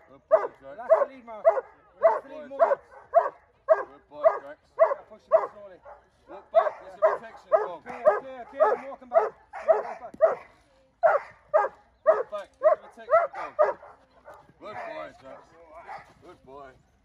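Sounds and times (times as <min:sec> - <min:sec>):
dog barking: 0:00.3 - 0:16.2.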